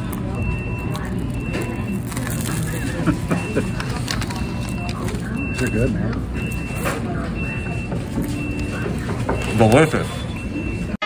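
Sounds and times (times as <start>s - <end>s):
faint voices: 0.0s - 11.0s
restaurant hum and murmur: 0.0s - 11.0s.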